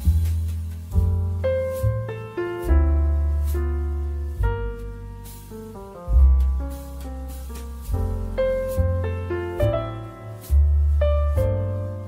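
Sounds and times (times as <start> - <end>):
deep sustained bass note: 0.0 - 12.0
light percussion strokes: 0.0 - 12.0
piano chords: 0.0 - 12.0.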